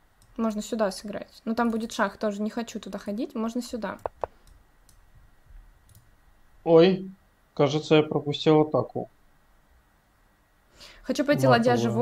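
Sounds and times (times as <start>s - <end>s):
chess move clicks: 4.0s - 5.0s.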